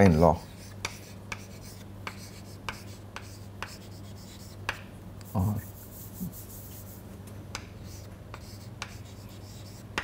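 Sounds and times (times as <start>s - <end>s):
chalk tapping and scratching: 0.5s - 10.0s.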